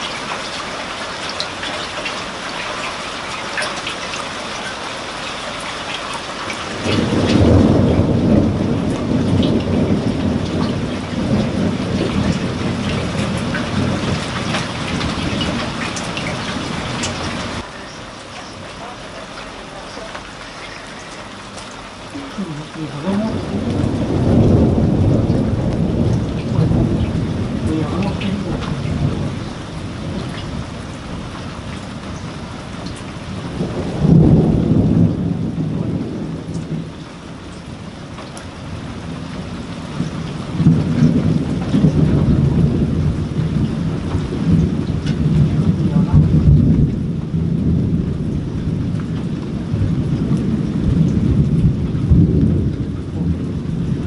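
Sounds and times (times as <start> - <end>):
steady rain: 0.0 - 54.0
thunder rumbling: 6.5 - 54.0.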